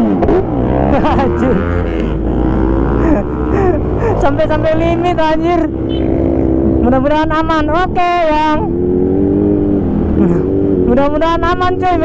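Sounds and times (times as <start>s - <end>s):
motorcycle engine low hum: 0.0s - 11.4s.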